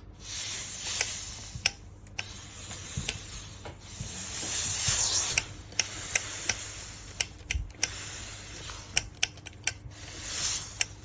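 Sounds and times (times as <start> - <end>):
steam iron hissing: 0.0 - 9.3, 9.9 - 11.0
sharp clicks: 8.9 - 9.8.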